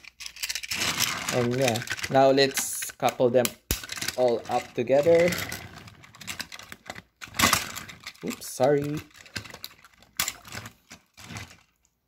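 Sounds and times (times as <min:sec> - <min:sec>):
plastic toy train clicks and rattles: 0:00.0 - 0:11.8
loud plastic clatter: 0:03.7 - 0:11.7.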